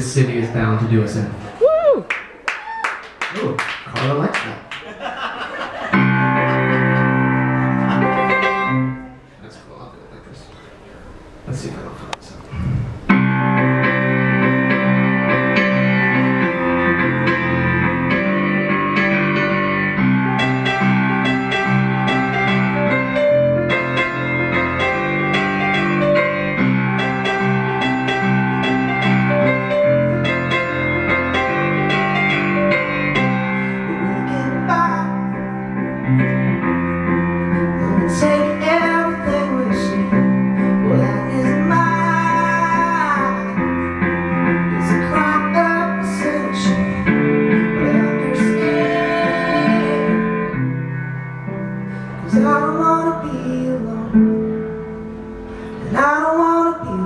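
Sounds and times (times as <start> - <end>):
solo piano chords: 5.8 - 9.4, 13.0 - 57.0
man singing: 33.8 - 35.4, 37.8 - 43.6, 44.7 - 50.2, 52.3 - 54.4, 55.8 - 57.0.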